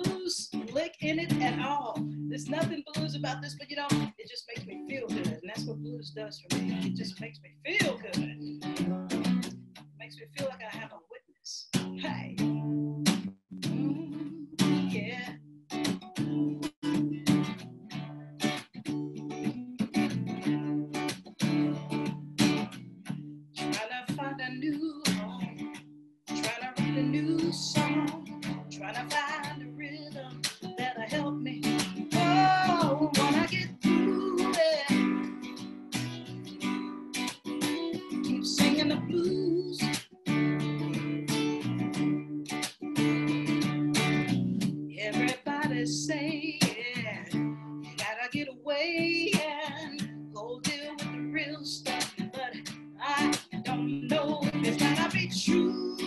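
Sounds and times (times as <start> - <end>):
person singing with vibrato: 0.0 - 7.2, 13.6 - 15.4, 18.9 - 20.1, 23.6 - 25.6, 26.3 - 35.6, 37.5 - 40.1, 45.0 - 56.0
acoustic guitar strumming: 0.0 - 11.0, 11.7 - 56.0.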